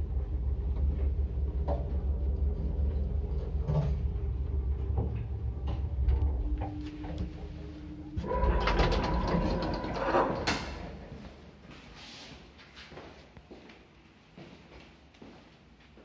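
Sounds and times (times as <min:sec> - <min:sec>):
sliding doors whining and rattling: 0:00.0 - 0:11.6
elevator humming: 0:00.0 - 0:12.0.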